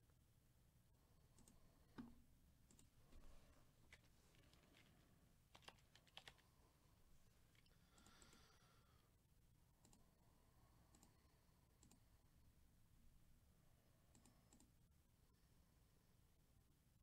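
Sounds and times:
computer mouse clicks: 1.3 - 2.9, 5.5 - 6.4, 9.8 - 10.2, 10.9 - 12.1, 14.1 - 14.8.

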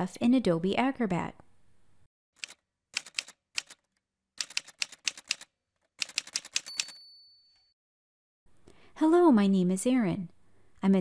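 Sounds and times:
typewriter keystrokes: 2.4 - 7.0
typewriter bell ding: 6.4 - 7.7.

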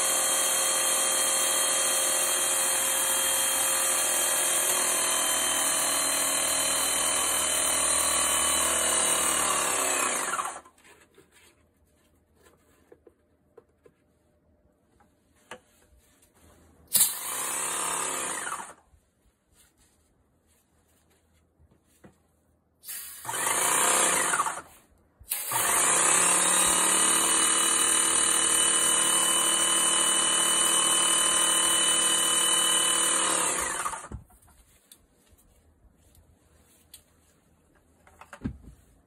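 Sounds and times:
paint sprayer motor and pump: 0.0 - 10.7, 22.8 - 24.7, 25.3 - 34.3.

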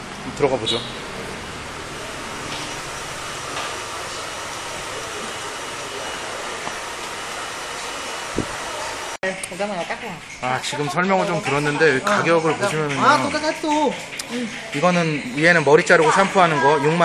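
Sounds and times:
hair dryer running: 1.1 - 9.2.

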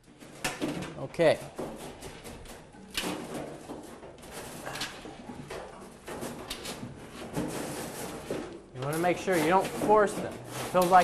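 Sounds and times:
wires rustling and scraping: 0.0 - 11.0.

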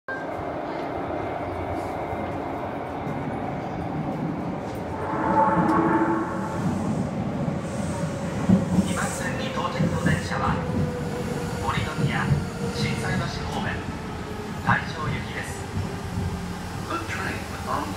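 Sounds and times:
subway train rumble: 0.1 - 17.9.

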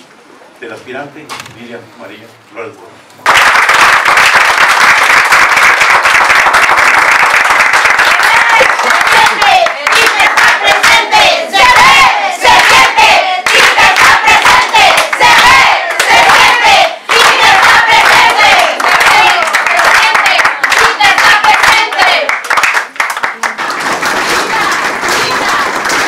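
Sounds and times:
crowd applauding and cheering: 3.2 - 26.0
crowd chanting rhythmically: 8.3 - 22.3, 24.2 - 26.0.

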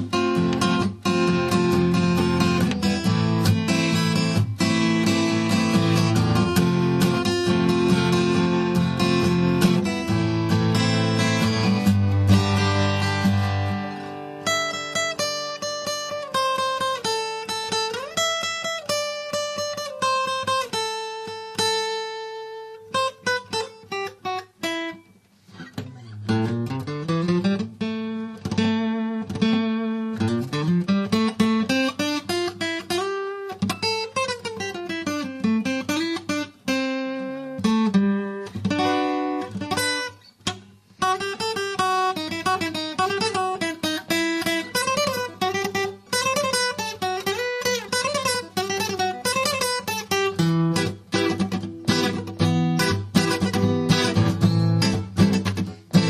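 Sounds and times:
fingerstyle acoustic guitar: 0.0 - 56.0.

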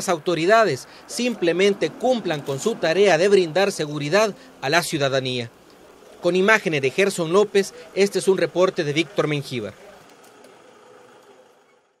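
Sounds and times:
vehicle engine idling: 0.0 - 11.6.

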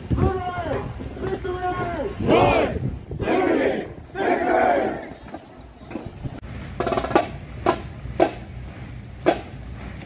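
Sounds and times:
marchers shouting a chant: 0.1 - 5.2.

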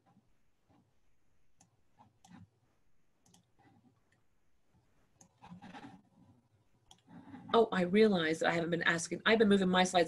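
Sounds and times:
computer mouse clicks: 1.6 - 2.6, 3.2 - 4.3, 5.2 - 7.5.

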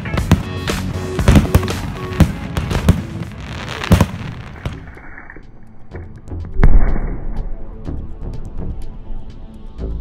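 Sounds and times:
fireworks bangs: 0.0 - 5.0.

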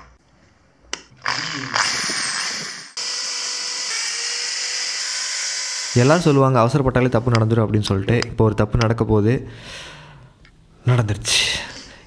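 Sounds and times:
electric drill drilling into plaster: 1.2 - 6.4.

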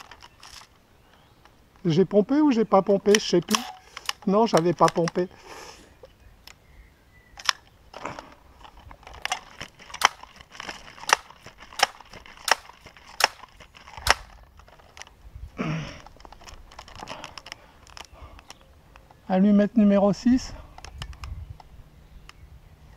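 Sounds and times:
air rifle mechanical clicks: 0.0 - 1.9, 2.9 - 5.4, 7.3 - 15.2, 16.0 - 19.2, 20.6 - 22.4.

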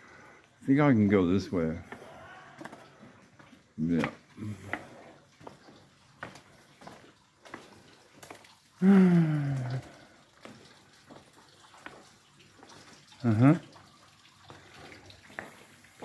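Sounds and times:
footsteps walking: 1.8 - 8.6, 14.4 - 16.0
man sighing: 8.8 - 10.0.

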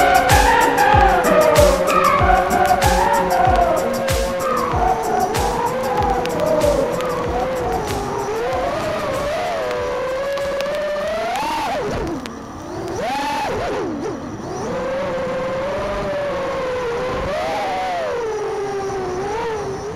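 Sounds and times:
quadcopter motors whining: 0.0 - 19.9.

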